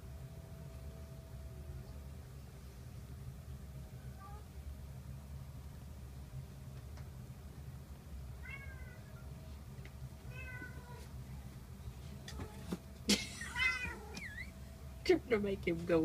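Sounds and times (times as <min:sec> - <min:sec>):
kittens mewing: 0:12.5 - 0:14.6
kitten chirp: 0:13.5 - 0:14.6.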